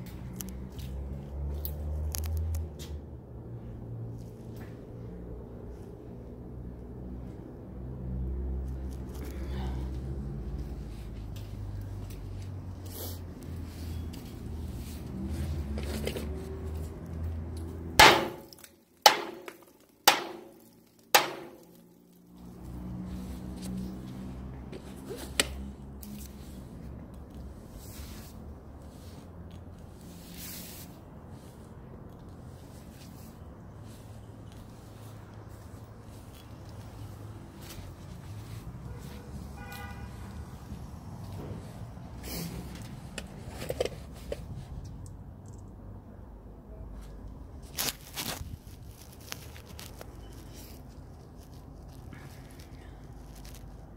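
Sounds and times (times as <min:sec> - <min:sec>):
knocks on steel: 0:18.0 - 0:20.5, 0:21.2 - 0:21.6.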